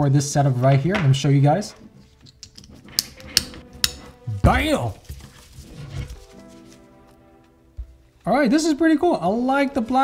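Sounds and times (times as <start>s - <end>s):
strap connector clicking: 2.3s - 4.0s
faint handling rustle: 4.8s - 8.3s.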